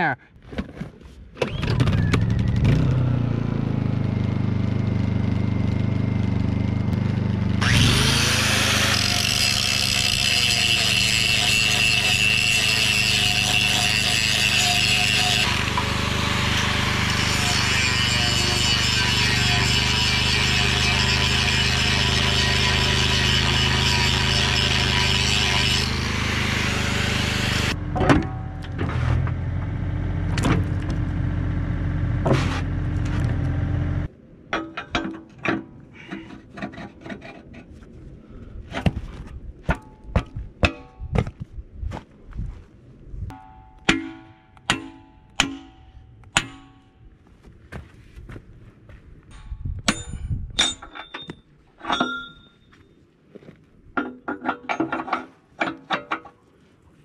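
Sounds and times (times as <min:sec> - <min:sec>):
generator running: 0:01.4 - 0:10.3, 0:15.1 - 0:34.1
angle grinder grinding steel: 0:07.6 - 0:27.8
metal knocks: 0:27.9 - 0:29.7, 0:43.3 - 0:47.1.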